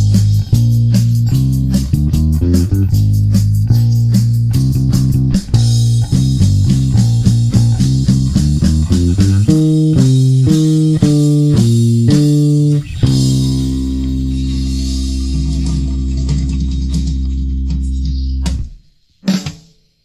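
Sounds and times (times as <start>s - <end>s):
electric bass guitar: 0.0s - 18.8s
drums with hi-hat: 0.0s - 20.0s.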